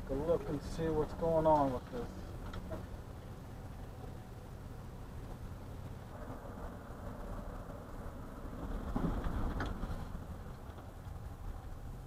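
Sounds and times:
car interior road noise: 0:00.0 - 0:12.0.

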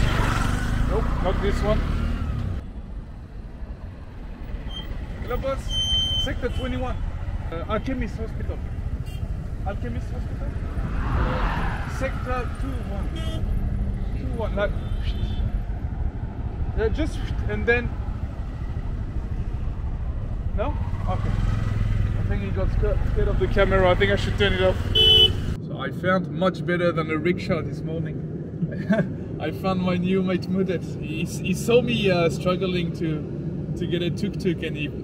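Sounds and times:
traffic rumble: 0:00.0 - 0:35.0.

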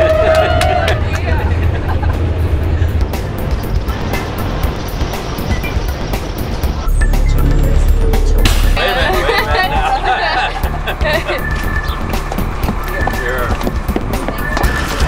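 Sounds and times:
person cheering woo: 0:00.0 - 0:01.1
bus engine and road rumble: 0:00.0 - 0:15.0.

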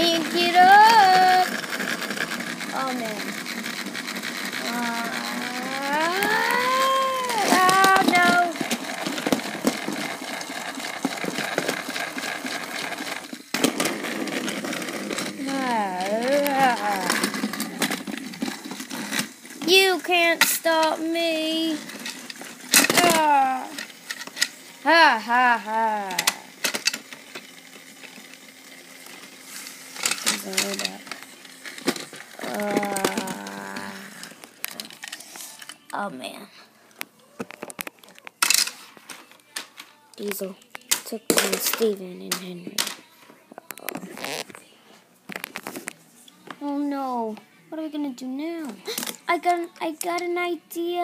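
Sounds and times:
plastic toy trains clicking: 0:00.0 - 0:36.0, 0:37.4 - 0:43.0
child making wavering cries: 0:04.6 - 0:07.5.

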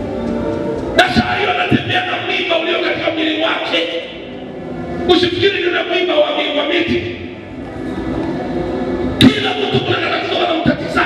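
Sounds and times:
man preaching through microphone: 0:00.9 - 0:04.3, 0:05.0 - 0:07.3, 0:09.2 - 0:11.0.

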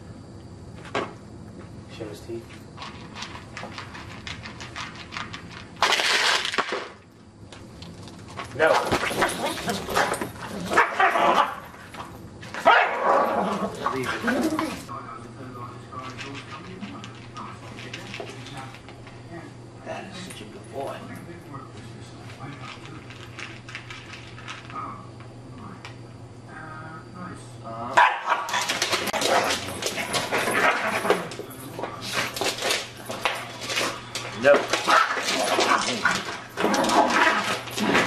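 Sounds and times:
dog barking aggressively: 0:08.7 - 0:11.7, 0:12.6 - 0:14.4, 0:28.0 - 0:31.1, 0:34.8 - 0:38.0
dog growling: 0:13.0 - 0:14.9, 0:34.9 - 0:38.0.

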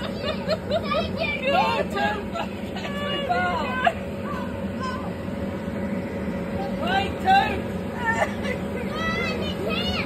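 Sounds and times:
electric blower humming: 0:00.0 - 0:10.0
voices talking: 0:00.0 - 0:10.0.

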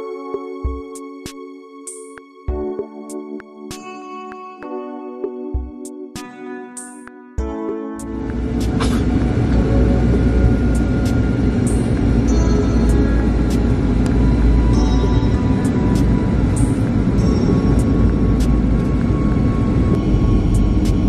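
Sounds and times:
music playing: 0:00.0 - 0:21.0
airliner low rumble: 0:08.1 - 0:21.0.

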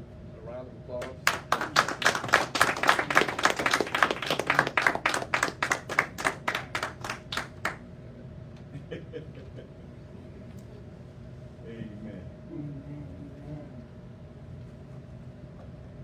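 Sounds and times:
congregation clapping: 0:01.0 - 0:07.8.

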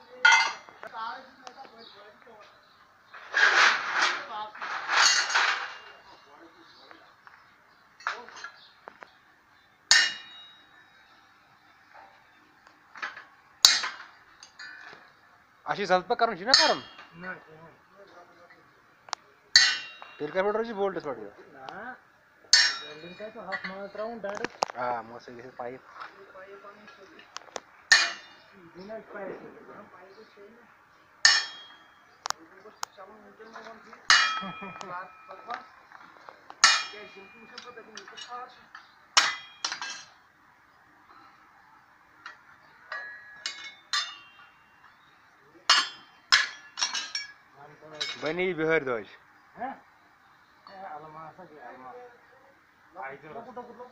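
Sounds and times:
hammer striking steel: 0:09.9 - 0:10.6, 0:13.6 - 0:14.1, 0:16.5 - 0:17.2, 0:19.5 - 0:20.4, 0:22.5 - 0:23.8, 0:27.9 - 0:28.4, 0:31.2 - 0:31.9, 0:34.1 - 0:35.6, 0:36.6 - 0:38.3, 0:39.2 - 0:40.1, 0:42.9 - 0:44.6, 0:45.7 - 0:47.4.

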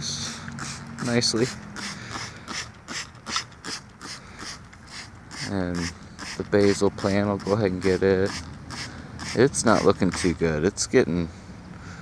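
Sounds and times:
spray bottle squirts: 0:00.5 - 0:10.4.

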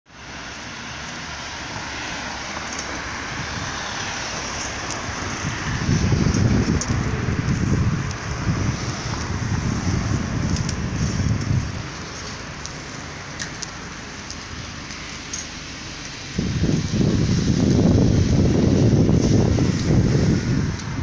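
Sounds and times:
street traffic hiss: 0:00.1 - 0:21.0
car driving past on wet road: 0:00.2 - 0:21.0
wind rumbling on microphone: 0:00.2 - 0:21.0.

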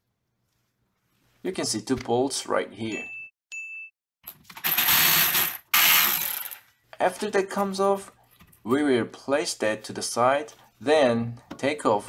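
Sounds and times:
power ratchet spinning: 0:04.6 - 0:06.6.

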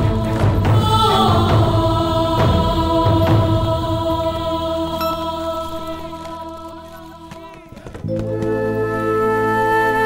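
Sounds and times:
choir-like chanting drone: 0:00.0 - 0:08.0.

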